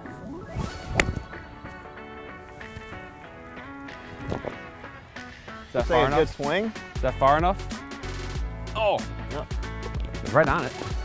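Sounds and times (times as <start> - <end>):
background music: 0.0 - 11.0
golf club striking ball: 0.9 - 1.4.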